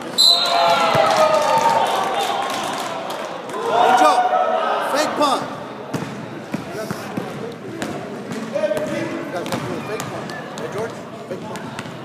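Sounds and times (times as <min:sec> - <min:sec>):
voices of players and spectators: 0:00.0 - 0:12.0.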